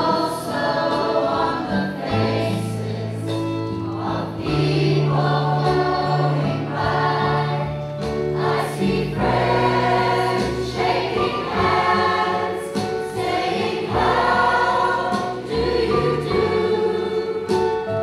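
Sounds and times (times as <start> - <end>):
mixed choir singing: 0.0 - 18.0.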